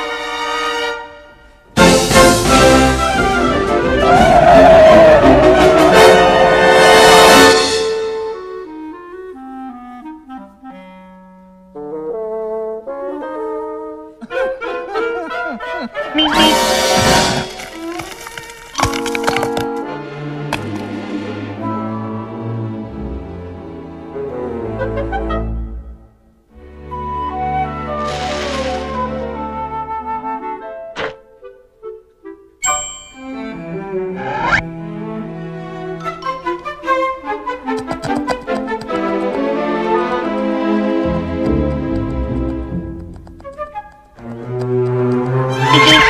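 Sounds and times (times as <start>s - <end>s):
orchestral cartoon music with brass: 0.0s - 18.2s, 19.7s - 46.0s
sharp orchestral hits: 16.2s - 17.7s
orchestral crash: 16.3s - 17.7s.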